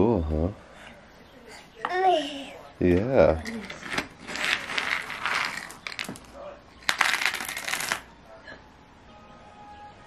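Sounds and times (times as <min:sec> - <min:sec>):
small pieces rattling in wooden bin: 0:04.2 - 0:08.0.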